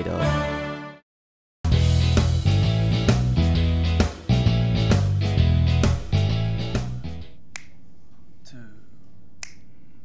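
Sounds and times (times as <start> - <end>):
theme music: 4.4 - 7.4
finger snaps: 7.4 - 7.8, 9.4 - 9.9.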